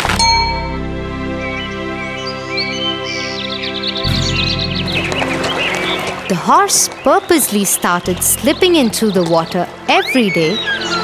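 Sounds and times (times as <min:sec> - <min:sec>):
deeper tone: 0:00.0 - 0:01.5, 0:04.1 - 0:06.3
background music: 0:00.0 - 0:11.0
bright chime ringing: 0:00.2 - 0:00.9.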